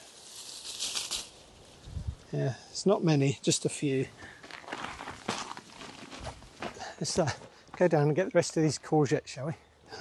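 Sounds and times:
beans and leaves rustling: 0.0s - 6.7s.

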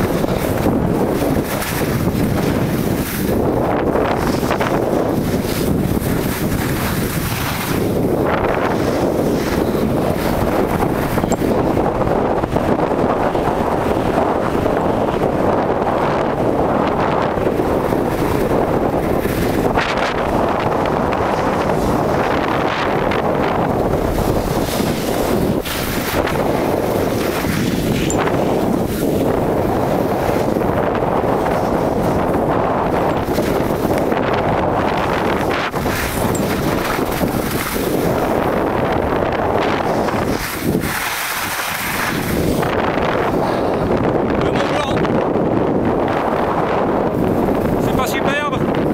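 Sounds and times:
wind buffeting microphone: 0.0s - 48.9s
skis hissing over snow: 0.2s - 3.4s, 4.0s - 10.4s, 24.0s - 30.6s, 31.4s - 32.5s, 35.3s - 38.5s, 39.6s - 43.8s.

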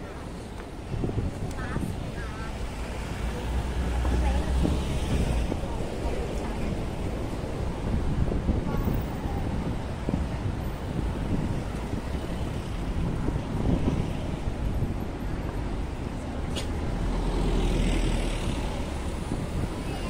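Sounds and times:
pedestrians' voices: 0.0s - 20.0s
road traffic passing: 0.0s - 20.0s.

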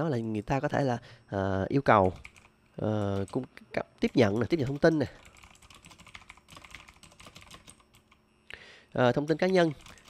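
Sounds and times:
typing on a computer keyboard: 2.0s - 3.4s, 4.0s - 8.2s, 9.3s - 10.0s.

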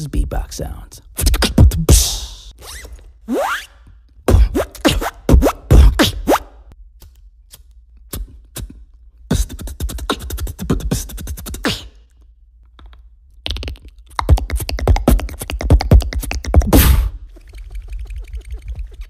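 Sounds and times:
beatboxed hissy burst: 1.2s - 2.5s, 8.2s - 12.0s
beatboxed clicks and pops: 1.2s - 3.0s, 7.0s - 19.0s.

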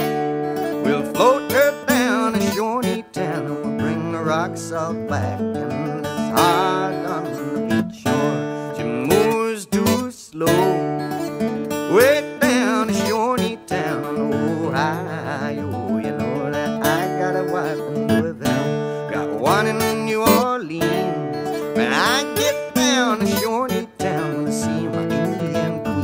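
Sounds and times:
acoustic guitar with sliding notes: 0.0s - 26.0s.

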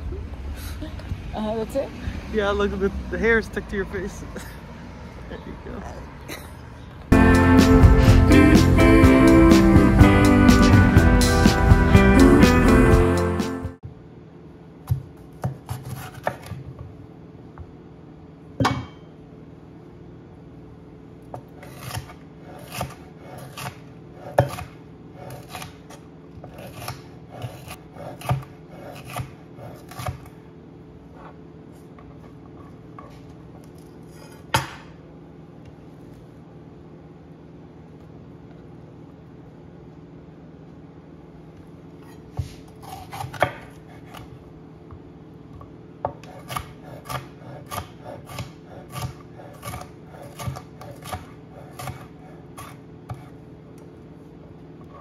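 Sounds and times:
knife slicing pepper on board: 14.9s - 16.6s, 21.4s - 30.3s, 42.1s - 44.4s, 46.1s - 53.4s.

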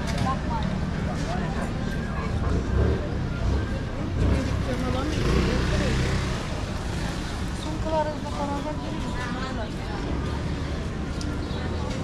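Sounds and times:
passersby talking: 0.0s - 12.0s.

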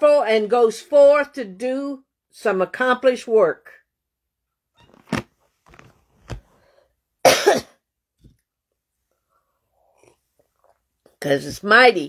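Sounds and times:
woman coughing: 7.2s - 7.8s.

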